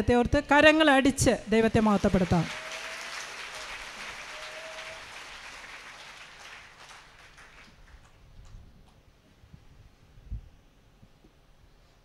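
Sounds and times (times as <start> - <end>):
congregation clapping: 1.8 - 9.0.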